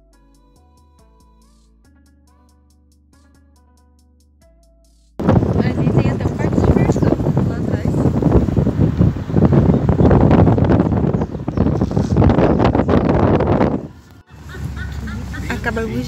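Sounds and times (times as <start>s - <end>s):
wind buffeting microphone: 5.2s - 16.0s.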